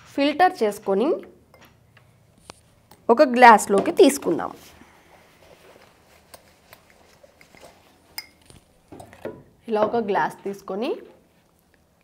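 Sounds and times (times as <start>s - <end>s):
saucepan and glass clinking: 7.4s - 9.4s.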